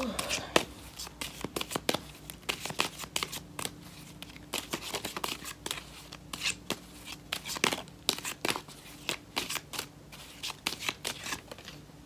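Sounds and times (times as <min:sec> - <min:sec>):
cards being shuffled: 0:00.0 - 0:11.8.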